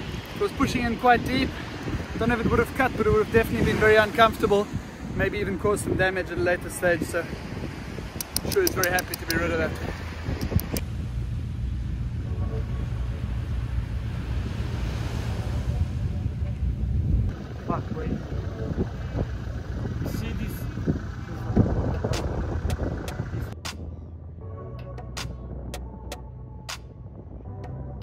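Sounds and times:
vehicle engine rumbling: 0:07.3 - 0:28.0
sharp clicks: 0:08.2 - 0:09.5, 0:10.4 - 0:10.8.

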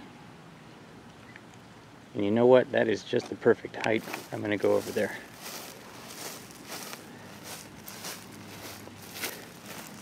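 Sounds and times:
footsteps through grass: 0:03.9 - 0:10.0.

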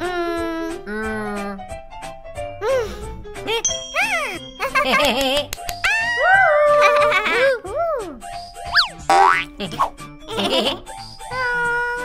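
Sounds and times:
cartoon background music: 0:00.0 - 0:12.0
whistle-like glides: 0:08.7 - 0:09.1
springy boings: 0:08.8 - 0:09.5.

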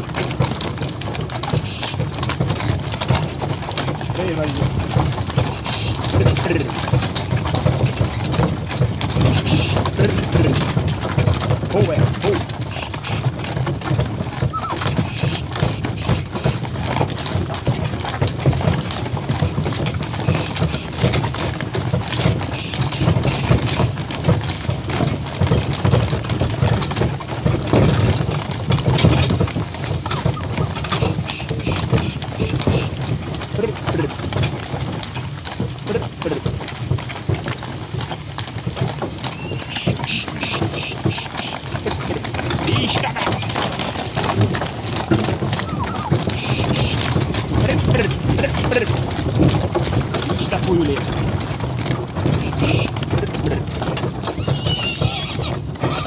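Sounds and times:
cart wheels rumbling: 0:00.0 - 0:56.0
hooves clip-clopping on gravel: 0:00.0 - 0:56.0.

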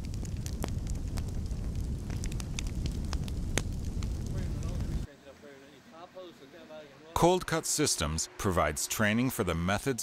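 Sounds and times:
fire crackling and popping: 0:00.0 - 0:05.1
fire rumbling: 0:00.0 - 0:09.8.

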